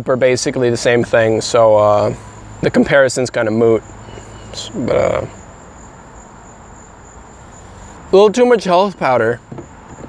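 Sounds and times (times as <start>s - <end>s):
distant lawn mower hum: 0.2s - 10.0s
high-pitched insect trill: 0.5s - 10.0s.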